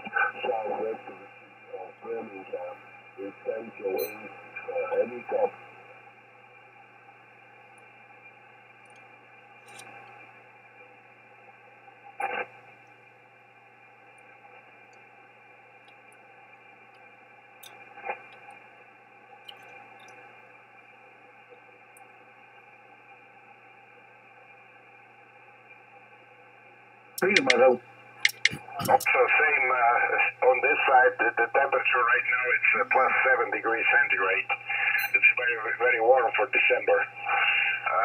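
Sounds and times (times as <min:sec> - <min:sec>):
radio crackles: 0:00.0 - 0:22.2, 0:27.2 - 0:38.0
radio static hiss: 0:00.0 - 0:38.0.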